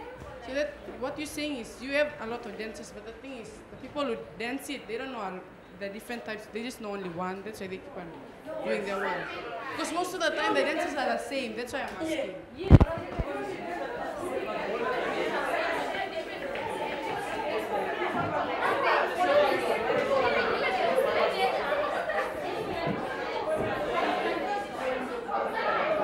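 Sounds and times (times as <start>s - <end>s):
students chattering: 0.0s - 26.0s.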